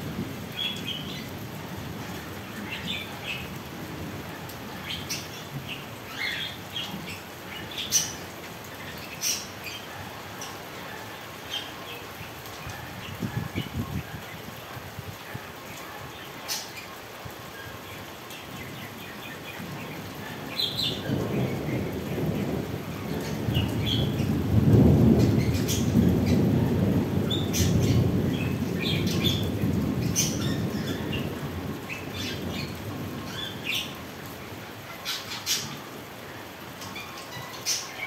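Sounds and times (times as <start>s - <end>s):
rolling thunder: 20.4s - 33.7s.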